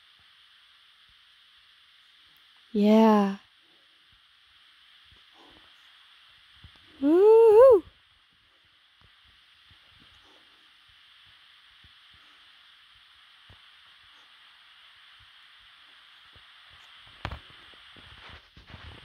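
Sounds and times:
faint outdoor hiss: 0.0 - 19.0.

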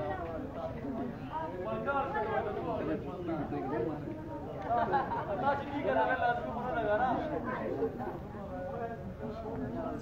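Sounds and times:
overlapping chatter: 0.0 - 10.0.

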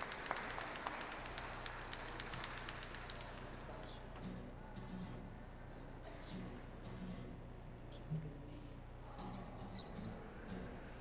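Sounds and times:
audience handclaps: 0.0 - 4.0
faint low hum: 0.0 - 11.0.

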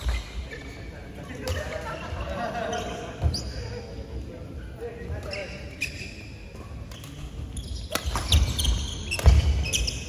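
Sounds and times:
shoe squeak: 2.7 - 3.9, 5.2 - 10.0.

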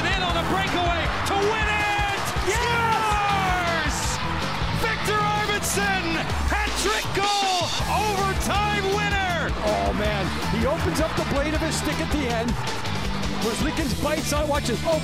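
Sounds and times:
commentator shouting excitedly: 0.0 - 12.5
background music with steady beat: 0.0 - 15.0.

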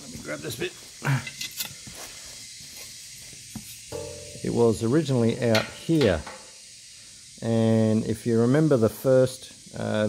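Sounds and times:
faint steady hiss: 0.0 - 10.0
knock on sheet metal: 4.0 - 4.6.

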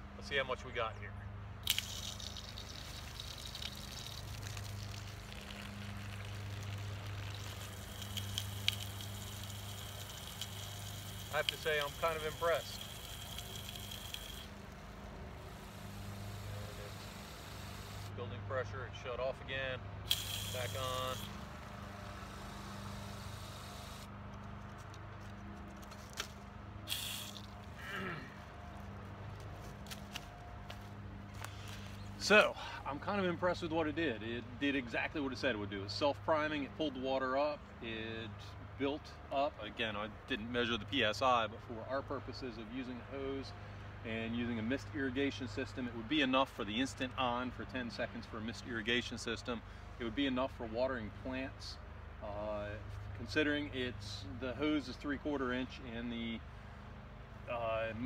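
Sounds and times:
steady low hum: 1.2 - 24.1
water spraying from hose nozzle: 1.6 - 18.1, 20.1 - 24.1, 26.9 - 27.6
footsteps in dry leaves: 28.7 - 32.2.

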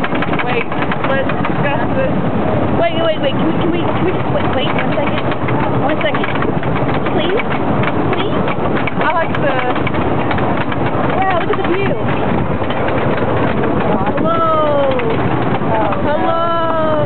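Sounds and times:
roller coaster train rattling: 0.0 - 17.0
wind buffeting microphone: 0.0 - 17.0.

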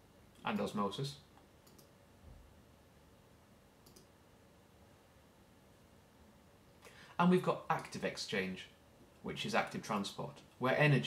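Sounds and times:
faint short clicks: 3.8 - 4.1.

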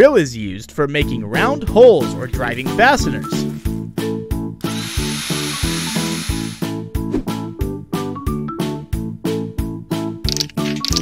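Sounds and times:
cordless drill driving into wood: 4.6 - 6.7.

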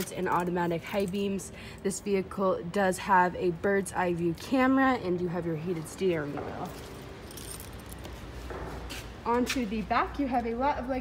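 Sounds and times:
light metallic jingle: 6.6 - 8.1.

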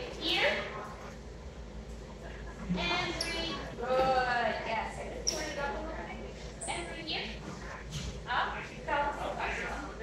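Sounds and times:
woman calling out in echoey hall: 2.7 - 7.4.

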